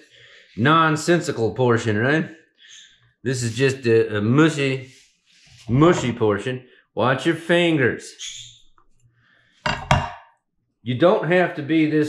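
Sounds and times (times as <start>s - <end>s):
cleaver knocking on wooden board: 9.7s - 10.2s.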